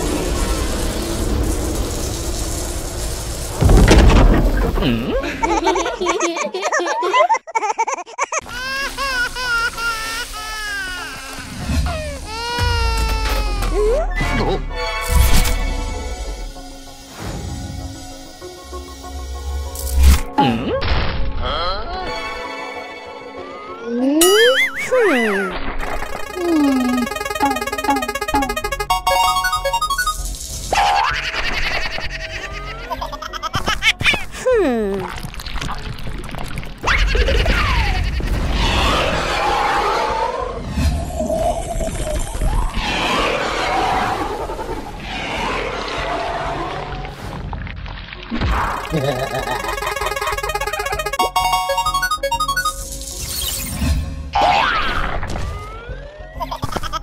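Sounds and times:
cartoon springy boings: 0:24.2 - 0:30.2, 0:48.6 - 0:52.8
wobbling rising pitch glides: 0:24.2 - 0:30.2, 0:48.8 - 0:52.8
descending run of notes: 0:25.8 - 0:30.2, 0:48.9 - 0:52.9
background music: 0:26.0 - 0:30.2, 0:49.1 - 0:52.9.

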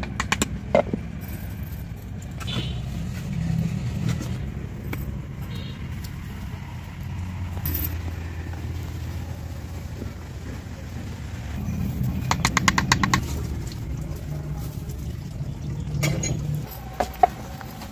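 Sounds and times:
steady low rumble: 0:04.2 - 0:16.9.

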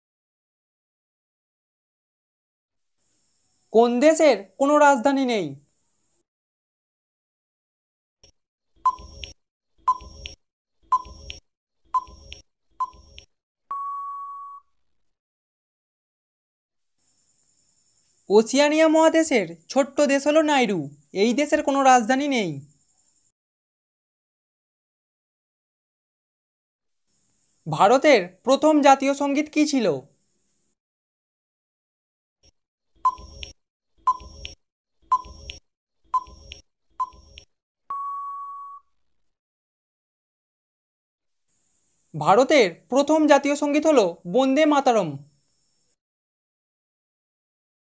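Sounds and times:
countdown timer beeps: 0:08.9 - 0:11.4, 0:12.0 - 0:14.6, 0:33.1 - 0:35.6, 0:36.2 - 0:38.8
long steady beep: 0:13.7 - 0:14.7, 0:36.2 - 0:38.9.

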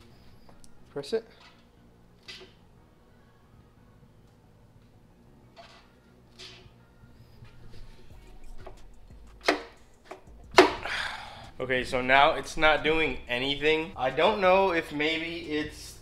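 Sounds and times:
man sighing heavily: 0:10.8 - 0:11.6.

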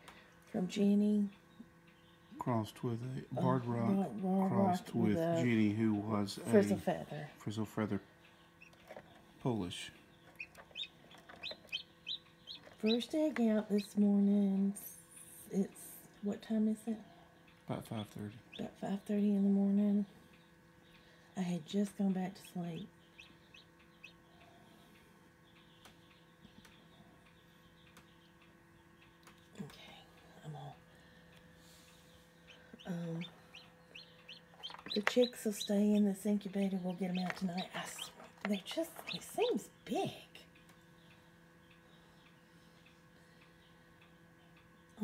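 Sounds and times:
chick peeping: 0:08.2 - 0:09.0, 0:09.8 - 0:14.0, 0:18.5 - 0:29.4, 0:31.8 - 0:39.7.

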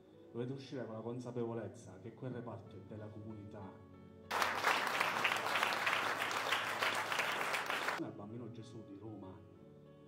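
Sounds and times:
audience applauding: 0:04.3 - 0:08.0.

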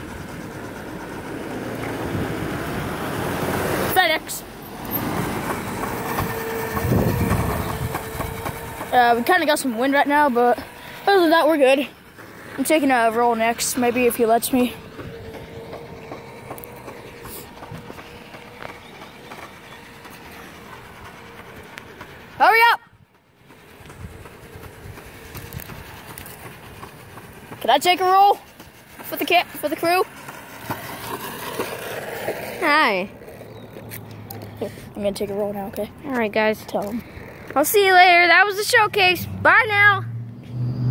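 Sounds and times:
van engine rumbling: 0:00.0 - 0:40.9
steady whine: 0:04.0 - 0:40.9
wind buffeting microphone: 0:05.2 - 0:10.0, 0:13.5 - 0:20.0, 0:22.8 - 0:27.6
wind on the microphone: 0:06.7 - 0:08.5.

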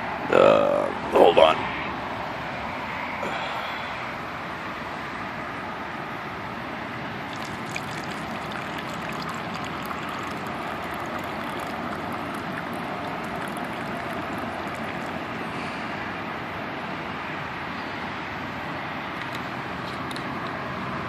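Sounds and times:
liquid pouring into plastic cup: 0:07.2 - 0:15.4.

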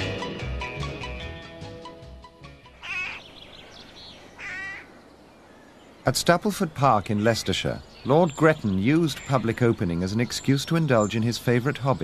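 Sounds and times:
bird calling: 0:02.7 - 0:06.1.

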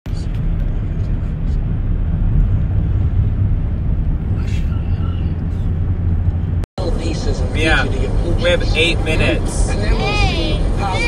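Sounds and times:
car engine: 0:00.1 - 0:11.0.

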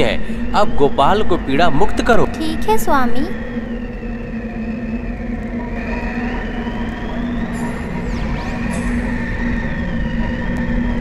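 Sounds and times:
magic effect humming drone: 0:00.0 - 0:11.0
rising high synth tone: 0:00.0 - 0:11.0.

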